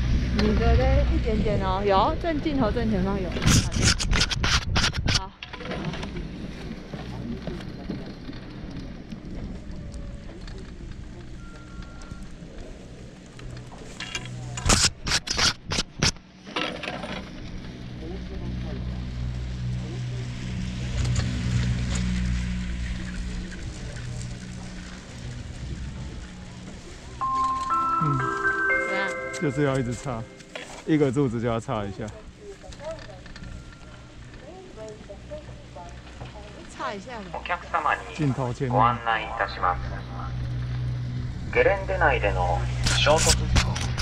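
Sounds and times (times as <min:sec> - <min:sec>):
steady low rumble: 0:00.0 - 0:03.7, 0:17.4 - 0:28.3, 0:33.2 - 0:44.0
chime-like tune: 0:27.2 - 0:30.6.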